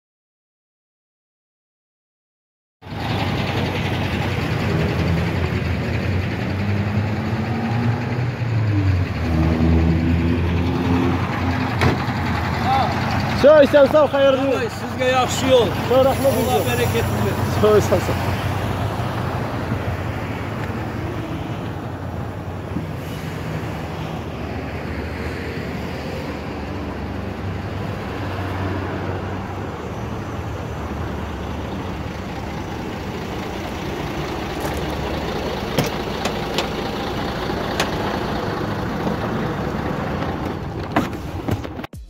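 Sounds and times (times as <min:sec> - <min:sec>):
truck engine running: 0:02.8 - 0:25.8, 0:29.0 - 0:42.0.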